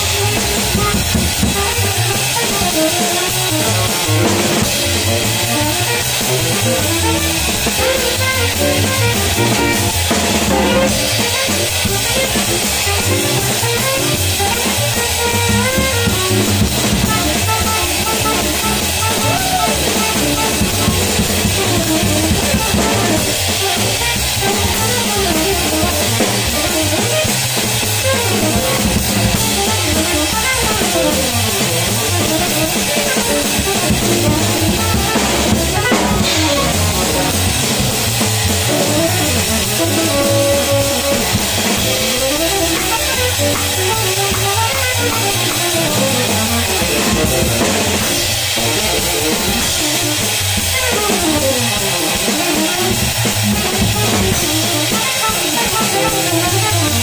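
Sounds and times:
double bass: 0.0s - 57.0s
drum kit played with sticks: 0.0s - 57.0s
guitar: 0.0s - 57.0s.

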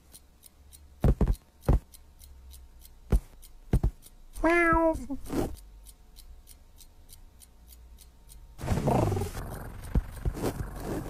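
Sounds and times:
quick regular ticking: 0.0s - 11.0s
cat paw footsteps: 3.1s - 4.0s.

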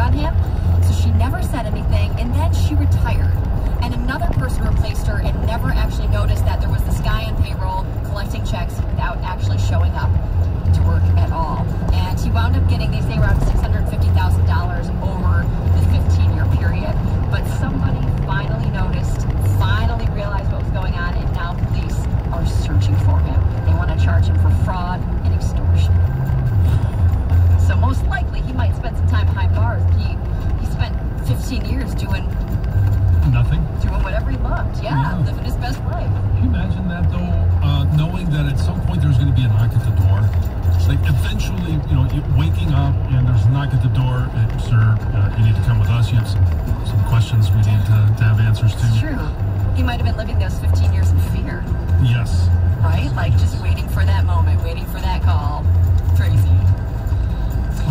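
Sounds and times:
car radio playing music: 0.0s - 57.9s
low hum of car: 0.0s - 57.9s
pulsing bass: 0.0s - 57.9s.

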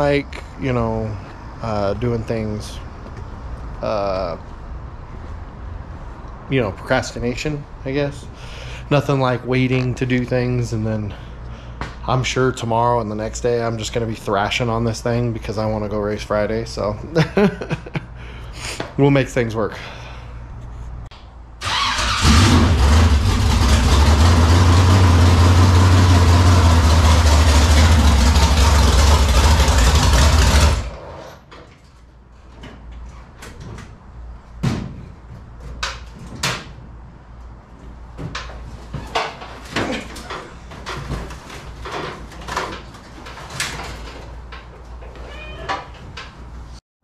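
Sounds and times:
race car engine starting: 21.6s - 31.4s
race car engine idling loudly: 22.7s - 30.9s.

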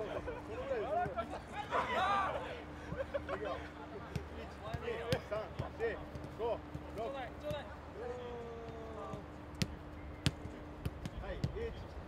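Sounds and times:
players shouting: 0.8s - 2.7s.

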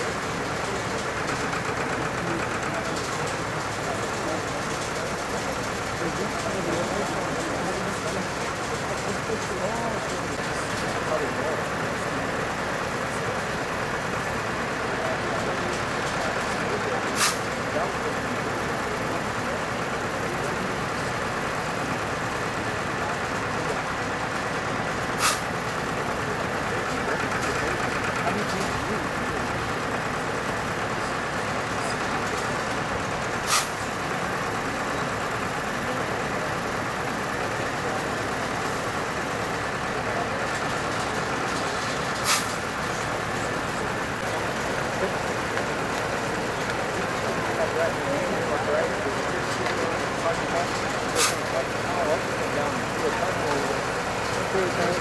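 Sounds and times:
background voices: 0.0s - 55.0s
diesel truck engine running: 0.0s - 55.0s.

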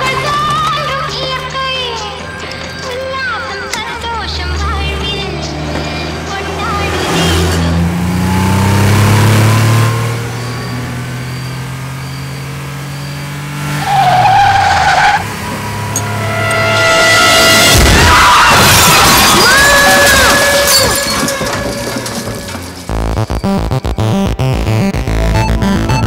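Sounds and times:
tyres squealing: 0.0s - 23.8s
car engine accelerating: 0.0s - 26.0s.

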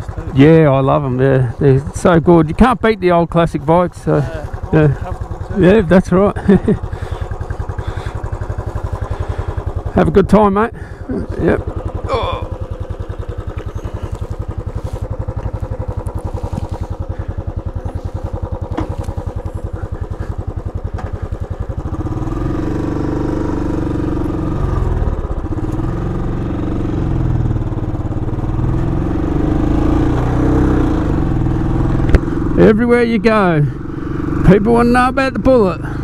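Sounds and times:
motorcycle engine idling and accelerating: 0.0s - 36.0s.

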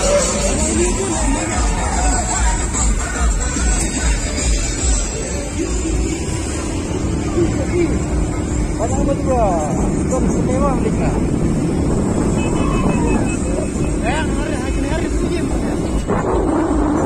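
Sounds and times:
people's voices: 0.0s - 17.0s
vehicle engine and road noise: 0.0s - 17.0s.

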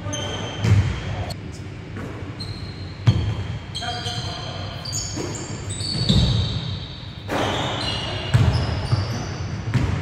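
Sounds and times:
sneaker squeaks: 0.0s - 1.4s, 2.0s - 10.0s
basketball bouncing on wooden floor: 3.0s - 3.5s, 8.3s - 10.0s.

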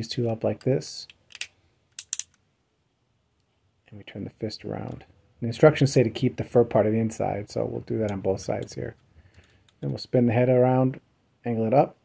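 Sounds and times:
action figure parts clicking: 1.1s - 2.4s.

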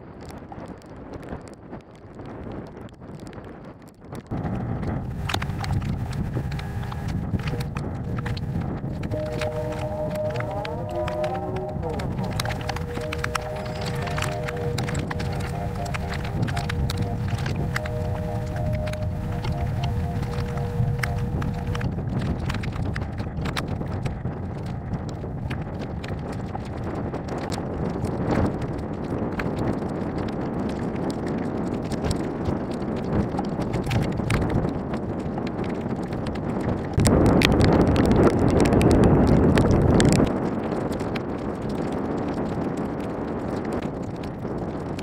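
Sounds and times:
wind buffeting microphone: 0.0s - 45.0s
sharp ticks: 4.2s - 45.0s
sustained gliding tones: 6.2s - 22.7s.

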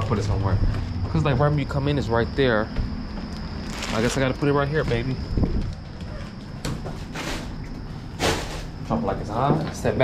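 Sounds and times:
packaging rustling: 3.6s - 4.4s.

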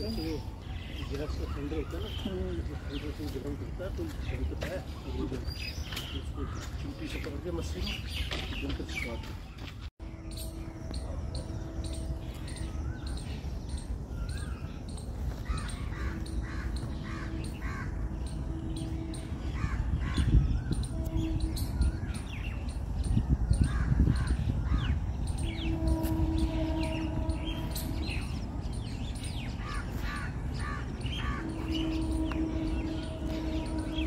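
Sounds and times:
small birds chirping: 0.0s - 34.0s
steady low rumble: 9.5s - 34.0s
steady hum: 10.0s - 34.0s
crow cawing: 15.4s - 18.2s, 29.6s - 33.5s.

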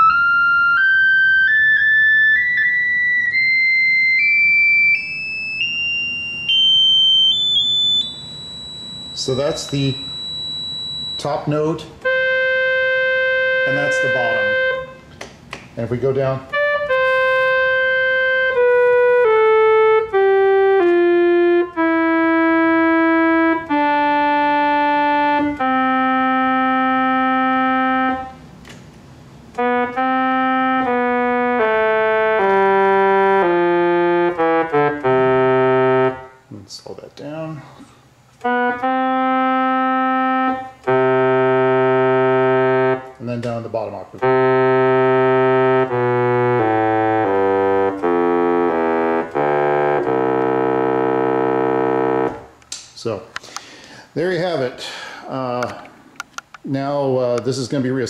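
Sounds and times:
electronic keyboard held notes: 0.0s - 15.2s, 15.8s - 28.8s, 29.4s - 56.5s.

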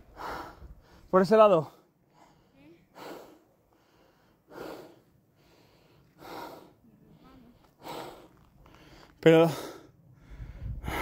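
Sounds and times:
person breathing hard: 0.0s - 1.1s, 1.8s - 11.0s.

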